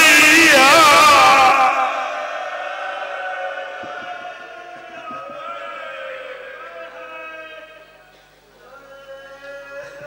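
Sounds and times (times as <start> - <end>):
man chanting over loudspeaker: 0.0 - 2.2, 3.0 - 10.0.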